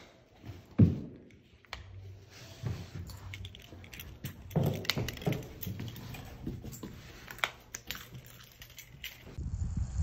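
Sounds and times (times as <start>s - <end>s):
leash hardware clinking: 1.3s - 9.4s
dog claws on floor: 2.9s - 9.4s.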